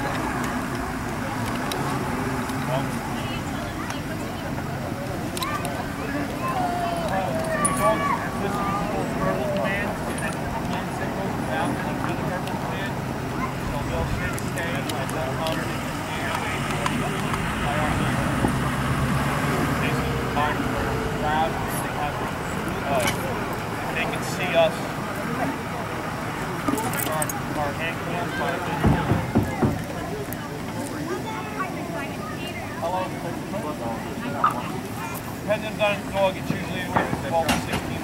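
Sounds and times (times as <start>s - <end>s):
indistinct voices talking: 0.0s - 38.0s.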